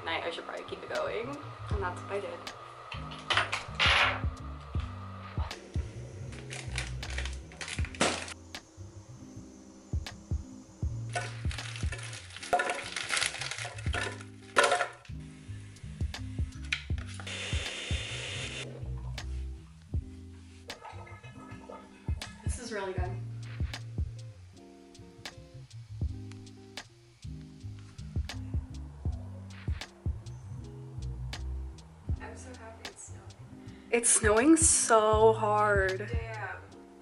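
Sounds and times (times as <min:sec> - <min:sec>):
background music with bass: 0:00.0 - 0:37.0
kitchen clicks and knocks: 0:11.2 - 0:13.0, 0:13.6 - 0:15.1.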